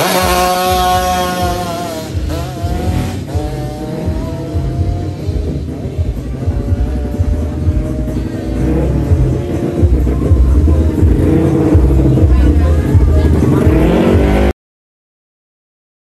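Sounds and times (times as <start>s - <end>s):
motorcycle engine revving high: 0.0s - 14.5s
music: 0.0s - 14.5s
voices: 0.0s - 14.5s.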